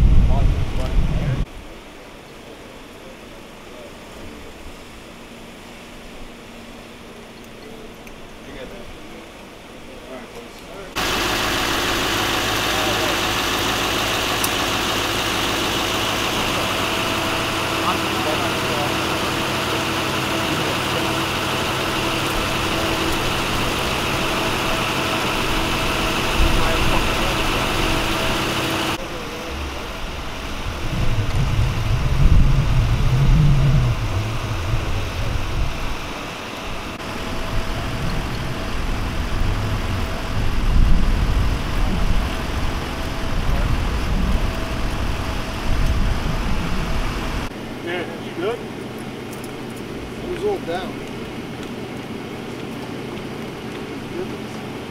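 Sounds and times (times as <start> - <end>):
uneven low rumbling: 0.0 - 1.6, 10.9 - 47.6
vehicle engine idling: 2.2 - 54.9.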